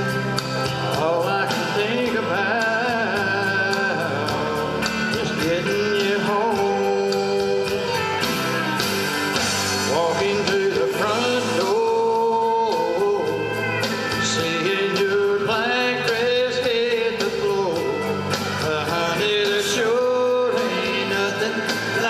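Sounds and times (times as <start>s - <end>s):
instrumental accompaniment with beat: 0.0s - 22.0s
man singing country song: 0.0s - 22.0s.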